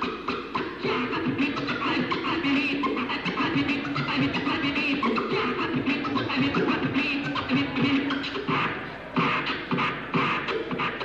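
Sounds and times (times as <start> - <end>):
record playing: 0.0 - 11.0
vinyl record scratching: 0.0 - 11.0.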